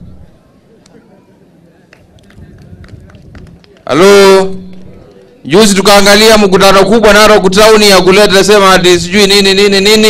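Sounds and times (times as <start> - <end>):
man speaking over loudspeaker: 3.8 - 10.0.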